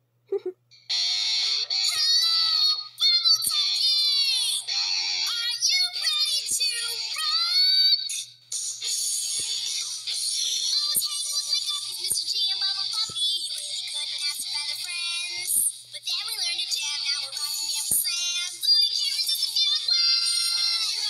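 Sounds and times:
high-pitched singing with music: 0:00.9 - 0:21.0.

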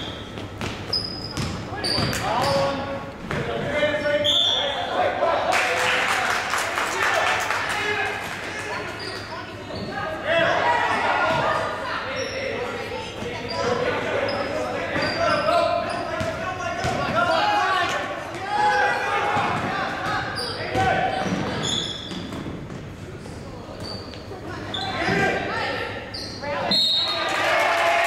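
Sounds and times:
basketball bouncing on wooden floor: 0:00.4 - 0:02.6.

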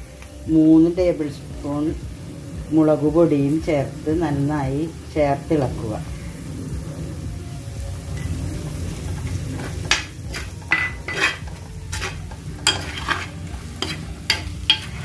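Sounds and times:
food sizzling in oil: 0:00.0 - 0:15.0
spoon scraping a stone pot: 0:09.1 - 0:15.0.

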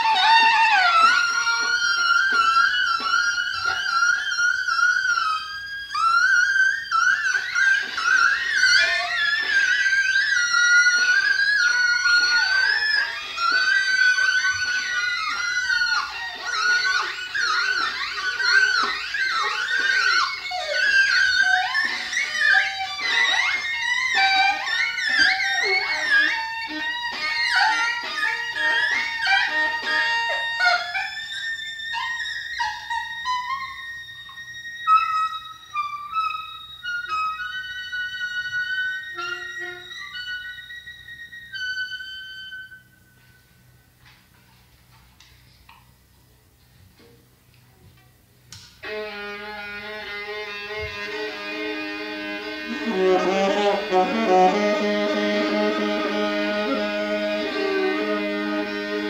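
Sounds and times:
viola: 0:00.0 - 0:43.4, 0:48.8 - 0:59.0
alto saxophone: 0:51.1 - 0:59.0.

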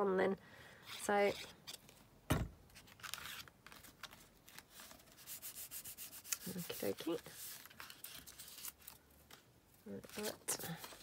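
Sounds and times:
thump: 0:02.3 - 0:02.6
fingers rubbing paper: 0:05.1 - 0:08.7.

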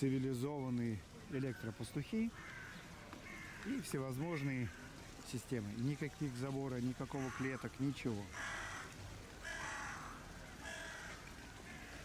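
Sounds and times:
harsh bird calls: 0:01.3 - 0:05.8, 0:06.6 - 0:12.0.

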